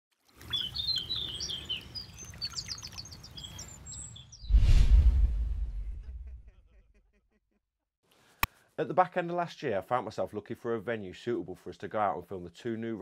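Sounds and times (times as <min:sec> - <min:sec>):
small birds chirping: 0:00.3 - 0:04.5
rushing whoosh with deep rumble: 0:04.5 - 0:06.3.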